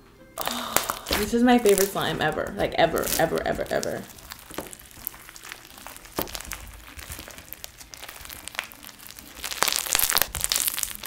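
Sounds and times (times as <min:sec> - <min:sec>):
crunchy slime crackling: 0:00.4 - 0:11.0.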